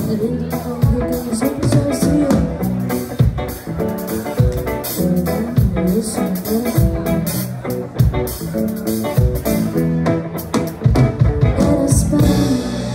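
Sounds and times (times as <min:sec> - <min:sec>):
electric guitars and bass: 0:00.0 - 0:12.9.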